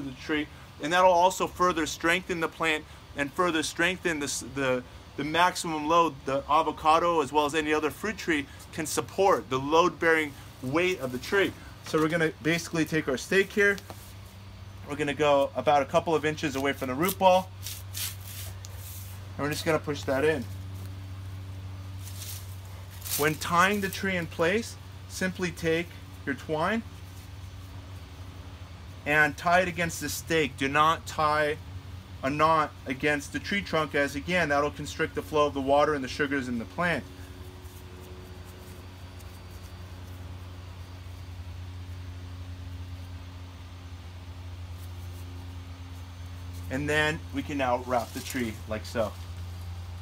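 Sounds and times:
steady low hum: 0.0s - 50.0s
faint rustle: 8.5s - 15.5s, 16.5s - 24.4s, 25.9s - 28.2s, 37.0s - 43.2s, 44.2s - 50.0s.

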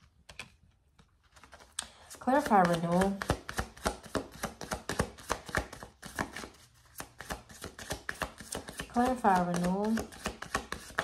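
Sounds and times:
cards shuffled by hand: 0.1s - 11.0s.

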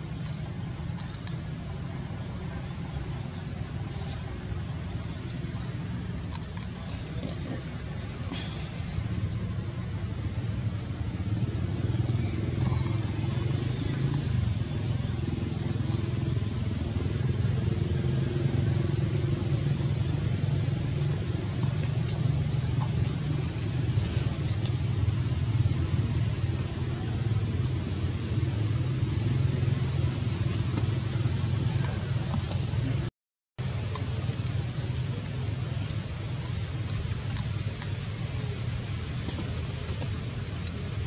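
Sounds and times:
low engine rumble: 0.0s - 41.0s.

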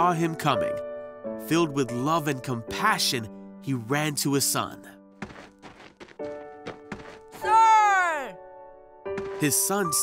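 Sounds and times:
light background music: 0.0s - 10.0s
cartoon running footsteps: 5.2s - 7.4s, 9.2s - 9.6s.

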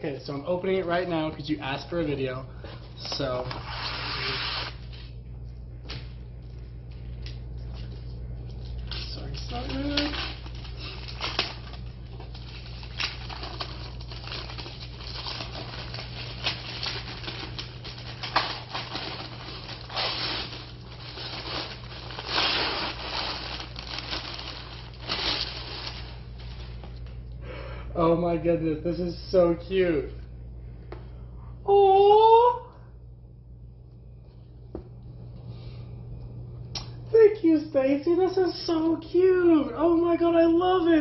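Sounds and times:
cardboard and paper crinkling: 7.6s - 27.0s
person humming: 31.6s - 32.8s.

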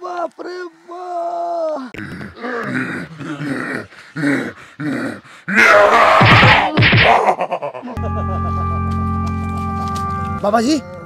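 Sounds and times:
man grunting and groaning: 1.8s - 7.6s.

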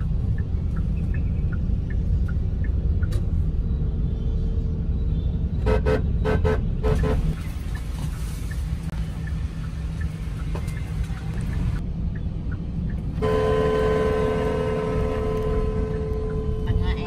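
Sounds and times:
vehicle rumble in traffic: 0.0s - 17.0s
short vehicle horn toots: 13.2s - 16.6s.

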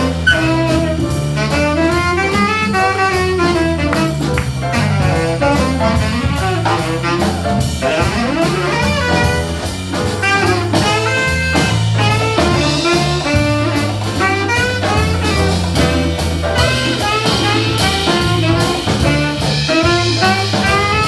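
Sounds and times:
bass line: 0.0s - 21.0s
drum kit: 0.0s - 21.0s
piano: 0.0s - 21.0s
tenor saxophone: 0.0s - 21.0s.

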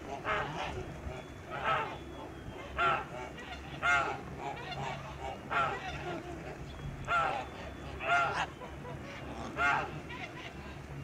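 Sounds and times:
geese honking: 2.6s - 6.0s, 7.1s - 10.6s.

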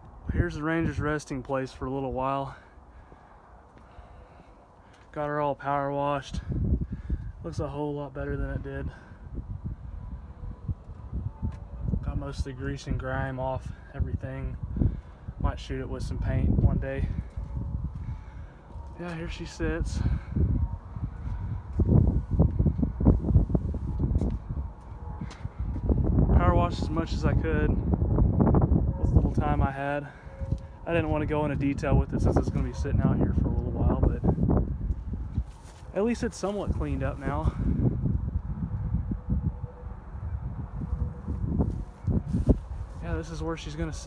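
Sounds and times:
wind buffeting microphone: 0.0s - 5.2s, 5.8s - 44.0s.

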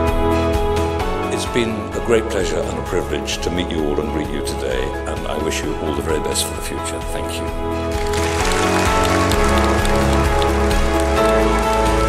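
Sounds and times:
background music with bass: 0.0s - 12.0s
audience applauding: 7.9s - 12.0s.

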